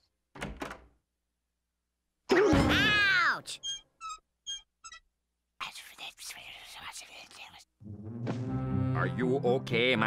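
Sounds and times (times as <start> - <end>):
cartoon character whispering: 5.6 - 7.7.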